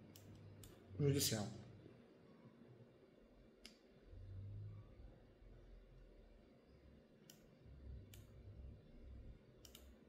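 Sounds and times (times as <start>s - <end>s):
faint sharp clicks: 9.6s - 9.9s.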